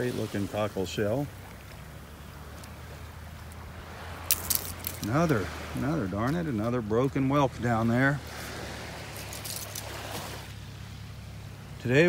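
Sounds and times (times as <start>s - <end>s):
small crackles: 3.4s - 5.3s, 9.0s - 10.4s
shells clicking and crunching: 4.2s - 5.2s, 9.2s - 9.9s.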